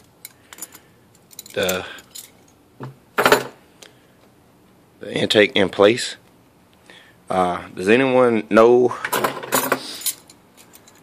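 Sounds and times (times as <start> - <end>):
metal bracket clinking: 0.2 - 2.6.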